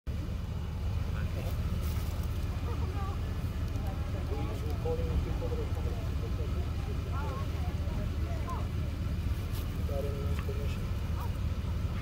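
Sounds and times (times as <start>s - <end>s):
cars idling: 0.1s - 12.0s
faint voices talking: 0.1s - 12.0s.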